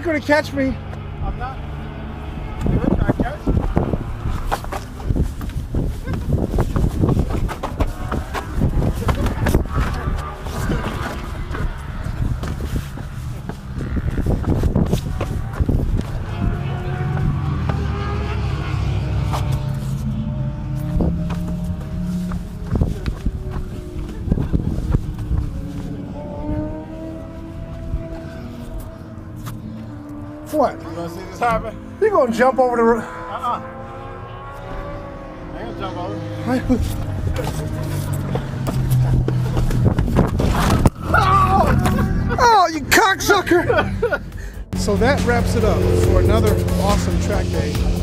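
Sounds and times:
people's voices: 0:05.8 - 0:12.6, 0:40.6 - 0:48.0
people laughing: 0:41.3 - 0:44.6.

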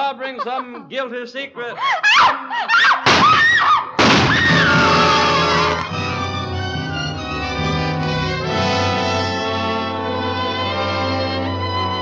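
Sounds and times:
high screaming cries: 0:01.8 - 0:05.5
long falling scream: 0:02.7 - 0:05.6
loud orchestral music sting: 0:04.7 - 0:12.0.

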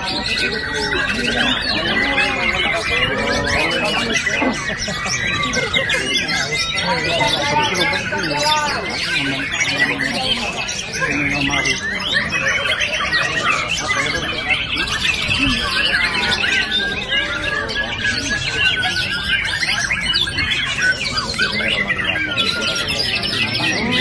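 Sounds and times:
birds singing whistled phrases: 0:00.0 - 0:24.0.

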